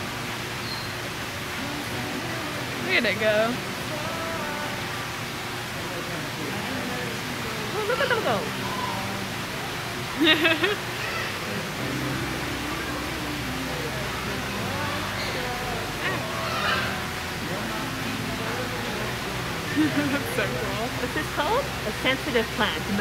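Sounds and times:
faint indistinct voices: 0:01.3 - 0:23.0.

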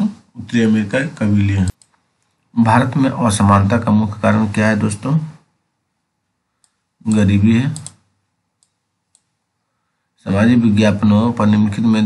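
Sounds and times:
man talking: 0:00.0 - 0:01.8, 0:02.5 - 0:05.5, 0:07.0 - 0:08.0, 0:10.2 - 0:12.0
computer mouse click: 0:01.7 - 0:02.4, 0:06.6 - 0:08.0, 0:08.6 - 0:09.3.

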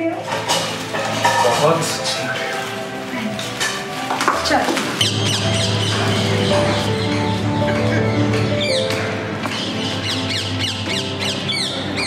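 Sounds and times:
background music with drone: 0:00.0 - 0:12.0
birds chirping: 0:04.6 - 0:12.0.

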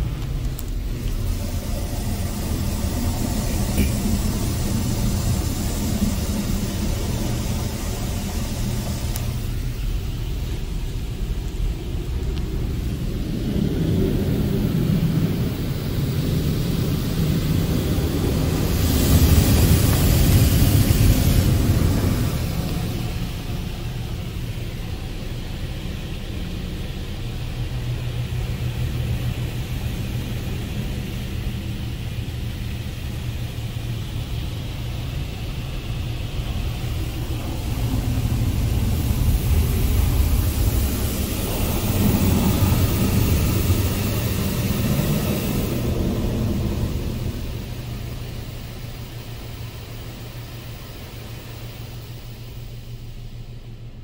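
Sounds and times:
loud hiss: 0:00.0 - 0:54.0
steady low rumble: 0:00.0 - 0:54.0
water spraying on car body: 0:00.0 - 0:54.0.

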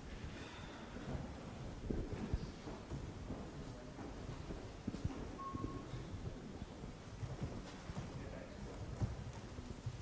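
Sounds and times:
short steady beep: 0:05.4 - 0:06.0.

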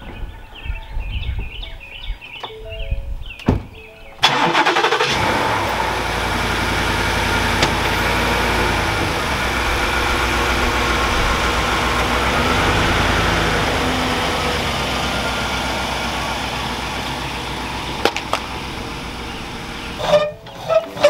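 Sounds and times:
truck engine cranking and idling: 0:04.2 - 0:21.0.

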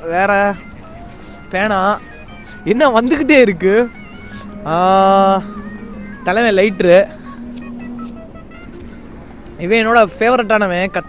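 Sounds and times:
drawn-out voice-like call: 0:03.6 - 0:09.6.

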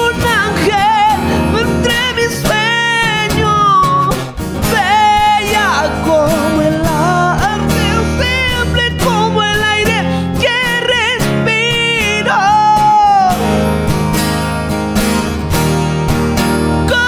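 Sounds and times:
person singing long notes: 0:00.0 - 0:13.6
acoustic guitars playing: 0:00.0 - 0:17.0.

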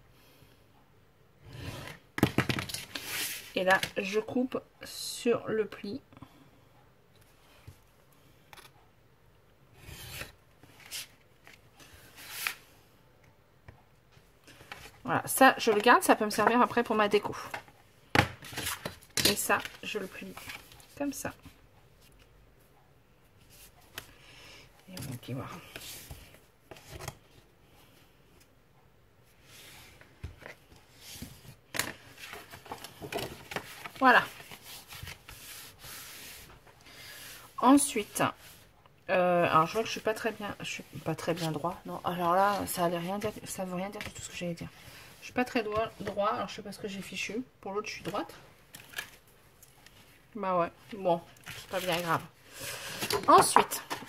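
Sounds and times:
paper rustling: 0:30.2 - 0:36.6, 0:50.9 - 0:52.2.

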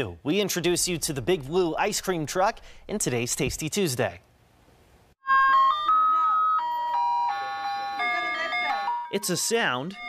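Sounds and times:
ice cream truck chime jingle: 0:05.2 - 0:10.0.

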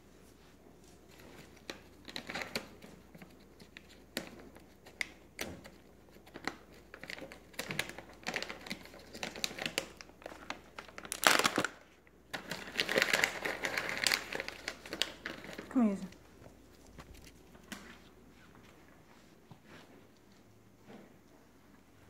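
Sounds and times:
plastic bag crinkling: 0:06.4 - 0:17.8.

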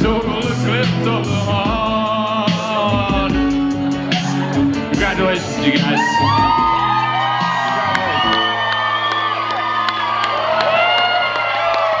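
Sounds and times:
crowd cheering and whooping: 0:03.7 - 0:12.0.

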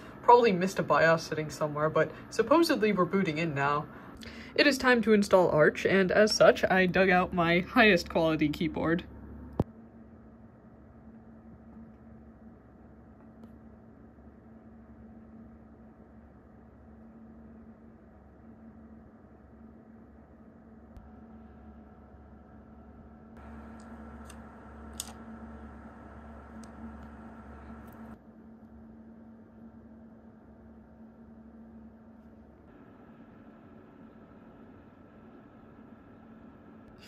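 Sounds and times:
computer humming: 0:00.0 - 0:37.0.

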